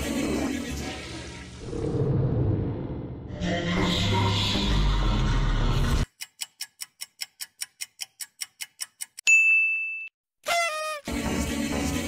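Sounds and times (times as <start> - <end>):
timer ticking: 6.0 - 9.3
bright ding: 9.3 - 10.1.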